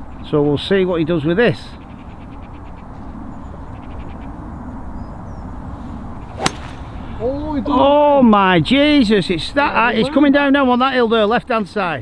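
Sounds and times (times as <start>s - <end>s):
golf club striking ball: 6.3s - 7.1s.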